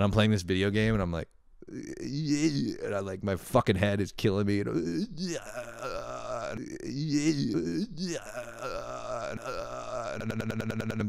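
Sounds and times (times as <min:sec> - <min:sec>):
man making low wordless sounds: 0:01.6 - 0:03.5, 0:04.3 - 0:11.0.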